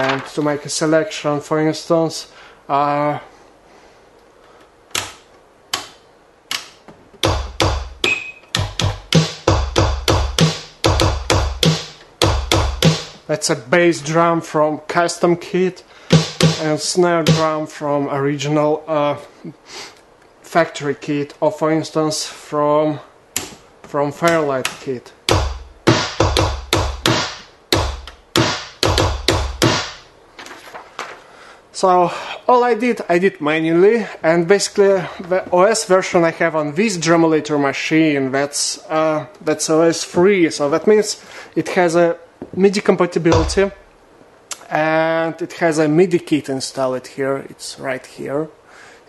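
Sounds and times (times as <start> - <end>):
drum machine beat: 7.2 - 13.2, 16.1 - 17.6, 25.3 - 30.0, 43.3 - 43.8
drum machine hits: 7.2 - 13.2, 16.1 - 17.6, 25.3 - 30.1, 43.3 - 43.8.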